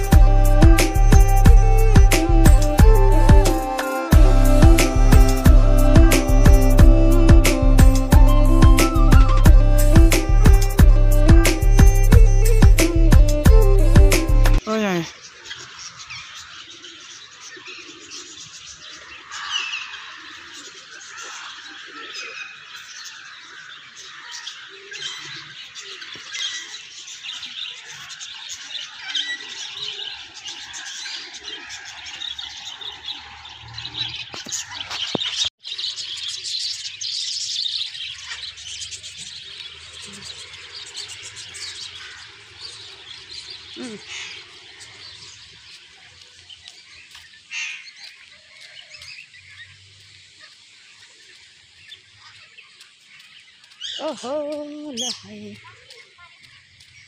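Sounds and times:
caged birds chirping and squawking: 0.0 - 57.0.

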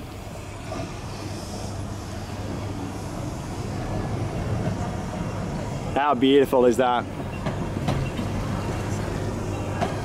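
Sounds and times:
electric tram humming: 0.0 - 10.0
tram wheels clicking: 0.0 - 10.0.

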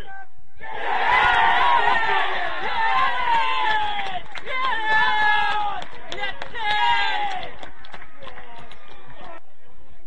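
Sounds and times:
faint outdoor noise: 0.0 - 10.0.

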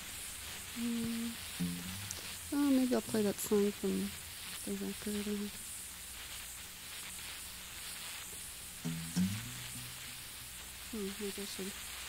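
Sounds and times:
tape hiss: 0.0 - 12.0
brief low pitched sound: 1.6 - 2.2.

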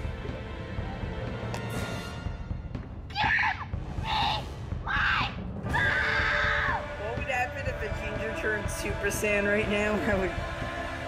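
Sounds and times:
boy screaming high-pitched: 3.1 - 6.8.

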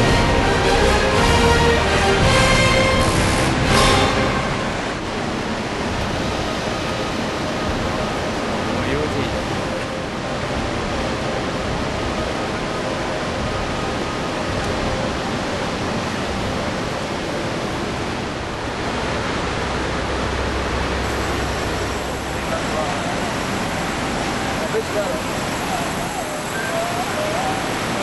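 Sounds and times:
river white water roaring: 0.0 - 28.0
faint voices: 22.0 - 28.0.

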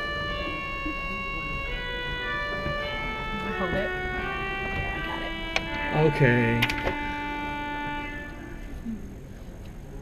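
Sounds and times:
pipe organ chord: 0.0 - 9.3.

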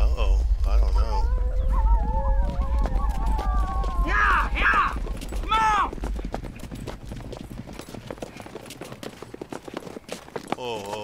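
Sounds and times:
low rumble: 0.0 - 8.1
horse hooves clip-clopping: 2.4 - 11.0.

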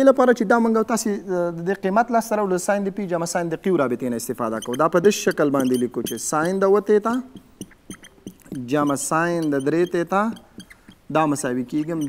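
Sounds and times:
man speaking: 0.0 - 7.4, 8.5 - 10.4, 11.1 - 12.0
marker scratching on whiteboard: 4.3 - 12.0.

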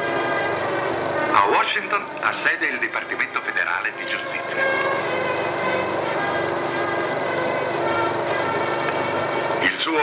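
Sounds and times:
film score sustained chords: 0.0 - 10.0.

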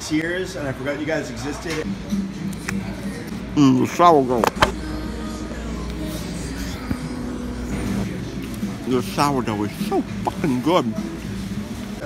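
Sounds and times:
faint background voices: 0.5 - 12.0.

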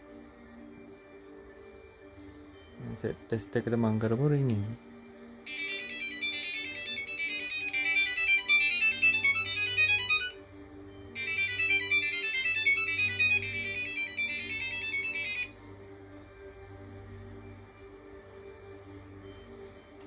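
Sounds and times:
high-pitched chiming melody: 5.4 - 20.0.

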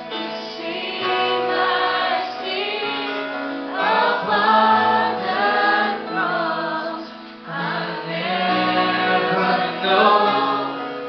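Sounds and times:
live band playing slow song: 0.0 - 11.0
voices singing along: 0.1 - 11.0.

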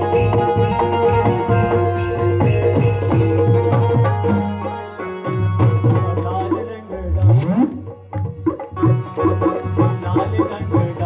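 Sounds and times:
harmonium: 0.0 - 11.0
keyboard: 0.0 - 11.0.

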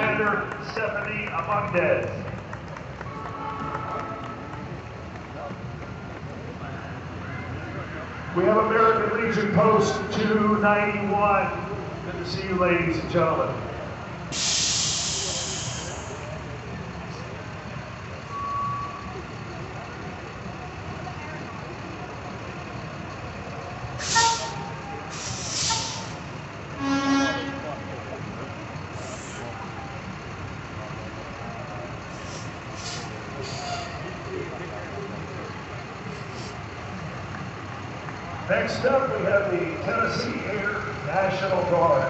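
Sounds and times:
heavy truck rumbling past: 0.0 - 42.0
truck horn blast: 3.1 - 4.6, 24.0 - 26.2, 26.8 - 27.9
air brake hisses: 14.3 - 16.3, 24.0 - 26.2, 32.1 - 34.0, 36.1 - 36.6.

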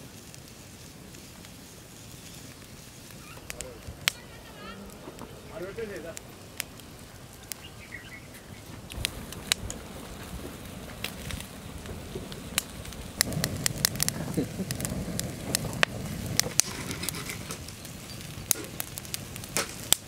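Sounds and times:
sharp fire pops: 0.0 - 20.0
wood fire crackling: 0.0 - 20.0.

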